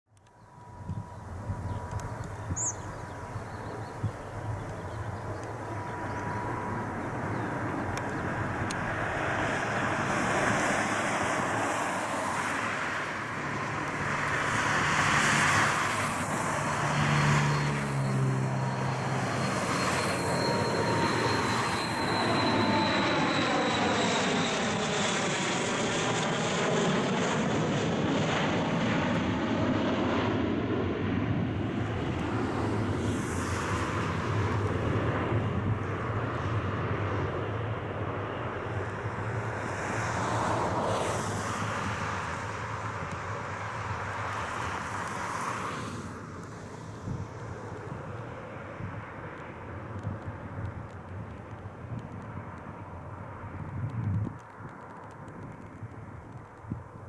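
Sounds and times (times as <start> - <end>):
jet airliner flying over: 0.2 - 57.0.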